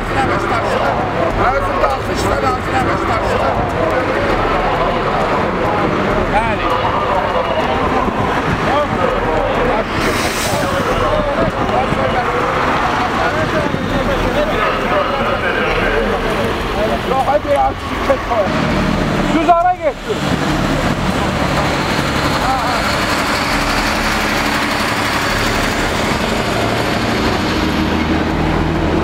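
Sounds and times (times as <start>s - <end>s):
men arguing: 0.0s - 28.1s
wind buffeting microphone: 0.0s - 29.0s.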